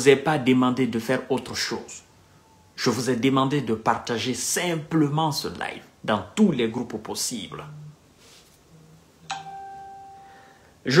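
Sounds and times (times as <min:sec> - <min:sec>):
man speaking: 0:02.8 - 0:07.8
electronic chime: 0:09.3 - 0:10.6.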